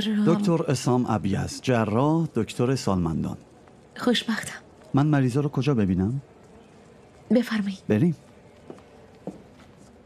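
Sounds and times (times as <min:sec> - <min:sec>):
soft footsteps: 0:04.6 - 0:10.0.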